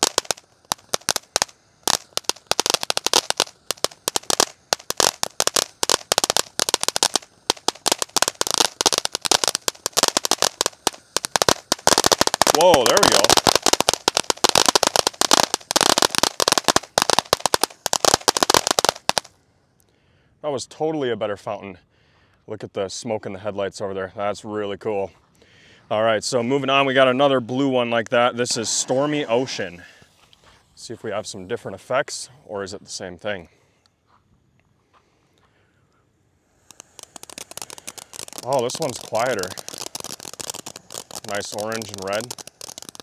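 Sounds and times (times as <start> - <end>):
firework fountain crackling: 0.0 - 19.4, 26.2 - 32.2, 36.5 - 43.0.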